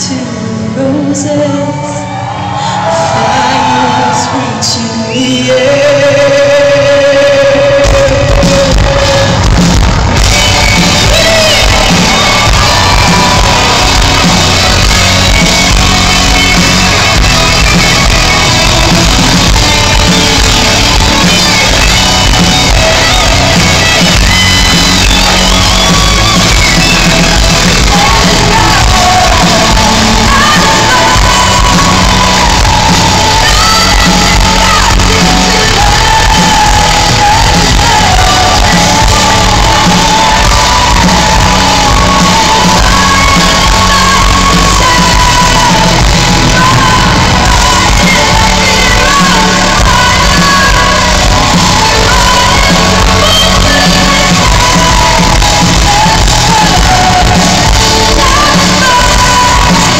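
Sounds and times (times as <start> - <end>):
woman singing: 0.0 - 59.9
symphonic metal band playing: 6.5 - 59.9.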